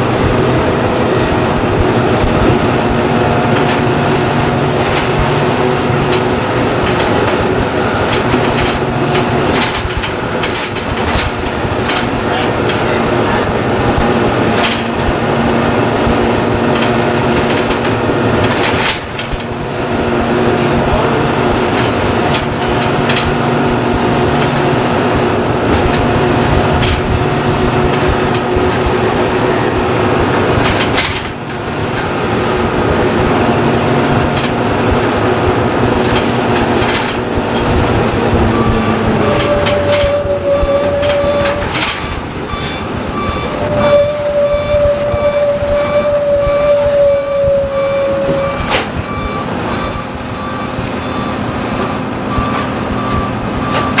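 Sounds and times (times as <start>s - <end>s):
bus diesel engine running: 0.0s - 54.0s
steady high tone: 19.9s - 54.0s.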